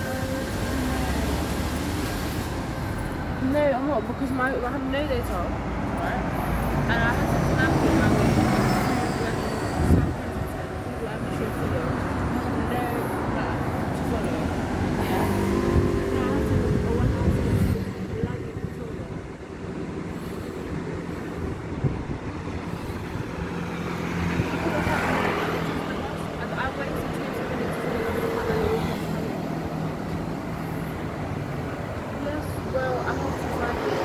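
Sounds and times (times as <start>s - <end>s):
steady engine hum: 0.0s - 34.0s
vehicle passing with rumble: 4.8s - 34.0s.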